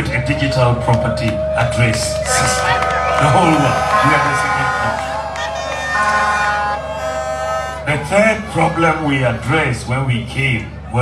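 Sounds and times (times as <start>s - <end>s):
horn long steady note: 2.2s - 8.1s.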